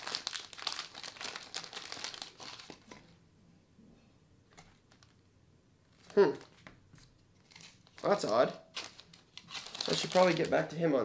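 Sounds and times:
plastic bag crinkling: 0.0 - 3.0, 7.4 - 10.8.

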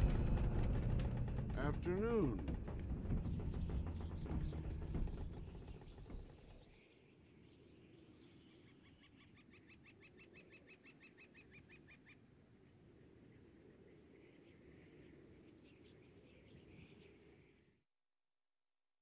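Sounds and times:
low sound: 0.0 - 6.6.

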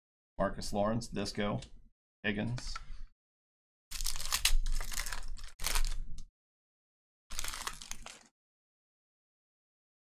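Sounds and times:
wrapper rustling: 3.9 - 6.0, 7.3 - 8.3
foil wrapper tearing and crinkling: 3.9 - 6.2, 7.3 - 8.3.

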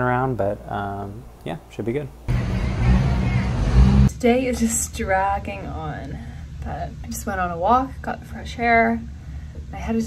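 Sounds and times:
street traffic rumble: 2.3 - 4.1.

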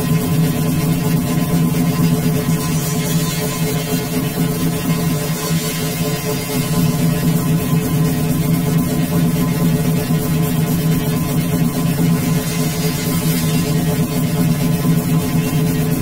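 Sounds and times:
electronic music with low tones: 0.0 - 16.0.

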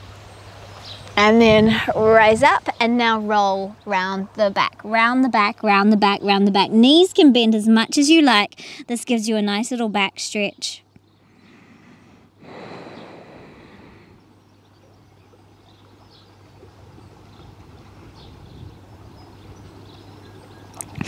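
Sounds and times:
steady low hum: 0.0 - 21.0
soft rush of noise: 10.9 - 21.0.

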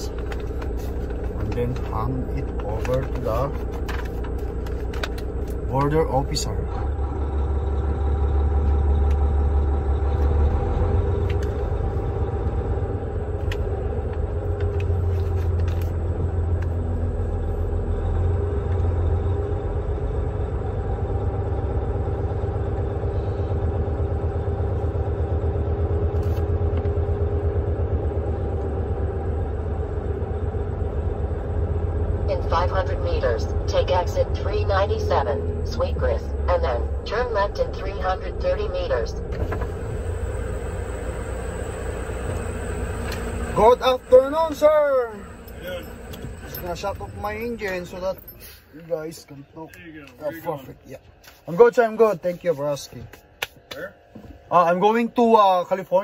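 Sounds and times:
diesel truck engine rumble: 0.0 - 50.1.

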